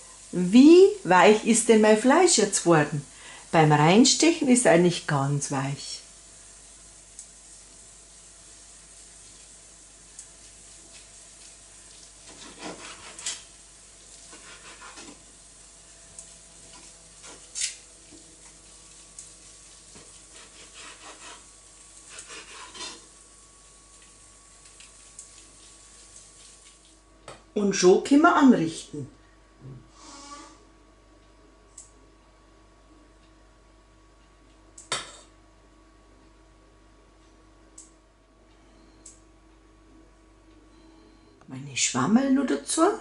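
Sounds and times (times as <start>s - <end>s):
faint steady hiss: 0.0s - 43.0s
knife scraping wooden board: 12.3s - 13.4s, 14.3s - 15.2s, 20.3s - 21.5s, 22.1s - 23.0s
knife slicing meat: 12.3s - 13.4s, 14.3s - 15.2s, 20.3s - 23.0s.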